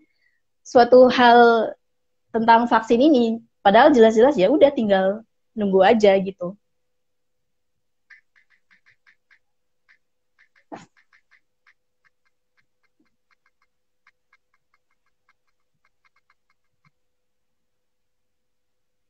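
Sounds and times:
faint steady hum: 0.0s - 19.0s
rapid irregular clicking: 8.0s - 17.3s.

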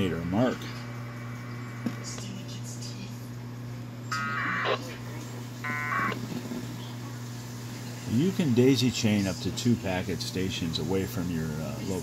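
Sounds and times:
steady low hum: 0.0s - 12.0s
radio data tones squawking: 4.1s - 6.3s.

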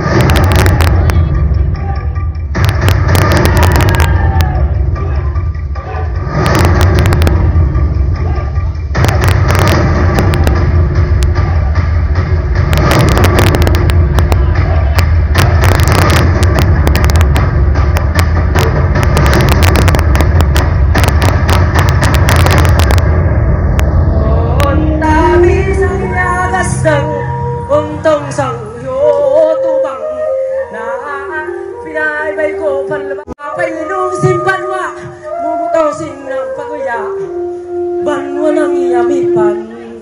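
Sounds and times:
rapid drum strikes: 0.0s - 26.6s
heavy low rumble: 0.0s - 29.0s.

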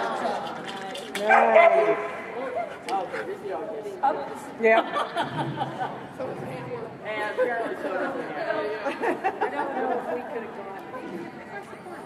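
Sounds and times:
people talking indistinctly in hall: 0.0s - 12.0s.

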